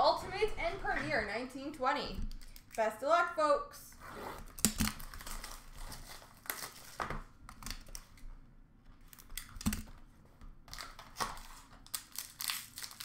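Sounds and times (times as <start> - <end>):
plastic wrap crinkling and tearing: 4.4 - 8.3, 10.7 - 13.0.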